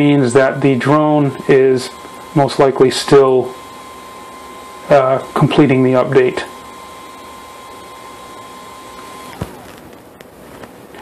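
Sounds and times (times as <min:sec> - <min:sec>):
cooling fan whining: 0:00.0 - 0:11.0.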